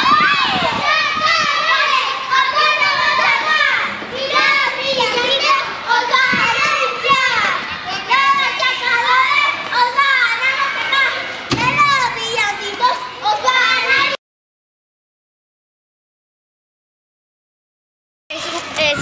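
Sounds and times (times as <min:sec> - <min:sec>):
children shouting and chattering: 0:00.0 - 0:14.2, 0:18.3 - 0:19.0.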